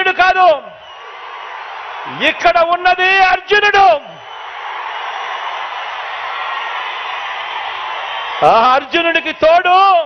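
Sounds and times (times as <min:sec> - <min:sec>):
large crowd cheering: 0:00.0 - 0:10.0.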